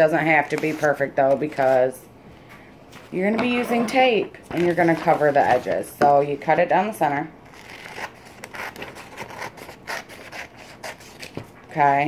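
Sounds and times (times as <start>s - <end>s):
scissors snipping paper: 7.5s - 11.5s.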